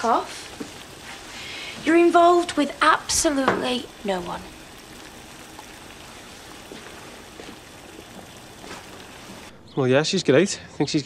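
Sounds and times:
commercial kitchen background hiss: 0:00.0 - 0:09.5.

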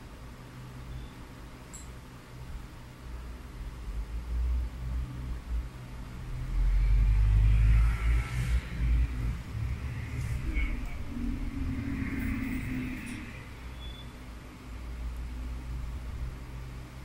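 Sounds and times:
deep low rumble: 0:05.4 - 0:13.6.

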